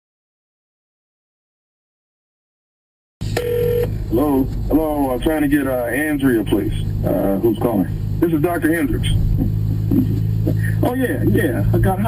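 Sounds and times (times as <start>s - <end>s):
low phone line hum: 3.2s - 12.0s
steady telephone tone: 3.4s - 3.9s.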